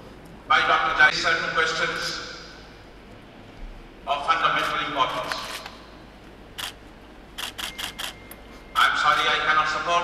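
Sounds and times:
camera shutter clicks: 7.4 - 8.2.

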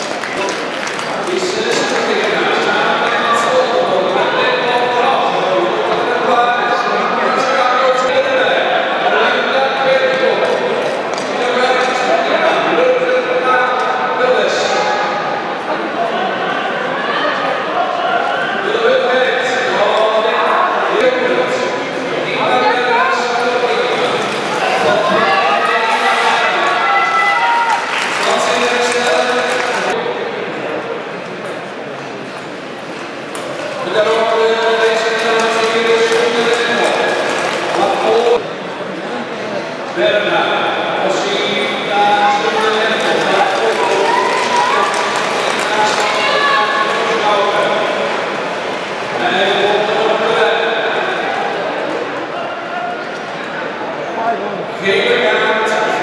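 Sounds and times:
man speaking over public address: 0.0 - 31.1, 33.6 - 53.1, 53.9 - 56.0.

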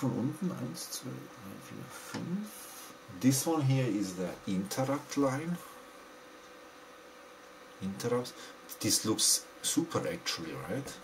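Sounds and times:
faint steady hum: 0.0 - 11.0
man speaking: 3.1 - 5.7, 7.8 - 11.0.

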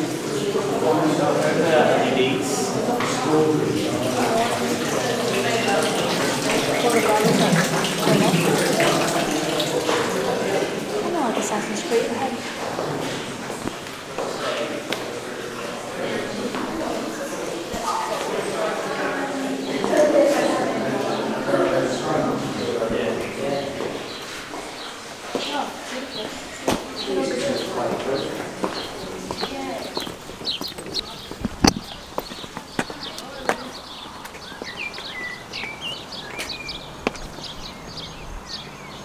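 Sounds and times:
people talking indistinctly: 0.0 - 35.2
footsteps: 2.9 - 21.3, 22.9 - 35.8
footsteps on hard floor: 12.3 - 15.1, 27.9 - 35.1
small birds chirping: 17.4 - 39.0.

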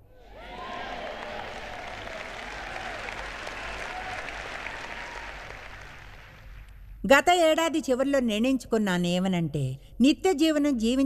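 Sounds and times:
audience applauding: 0.2 - 6.7.

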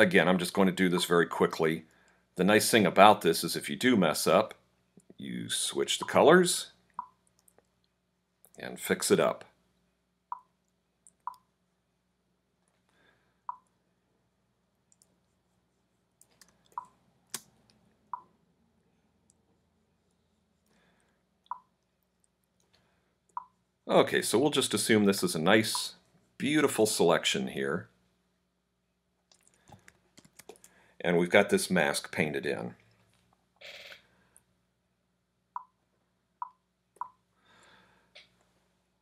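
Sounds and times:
computer mouse clicks: 29.3 - 30.7.

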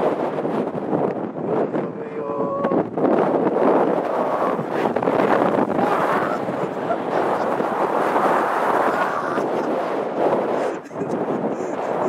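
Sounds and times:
gusting wind buffeting microphone: 0.0 - 12.0.

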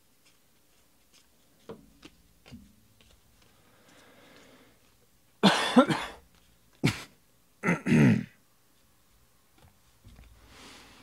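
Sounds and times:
man coughing: 5.4 - 6.2, 6.8 - 8.4.

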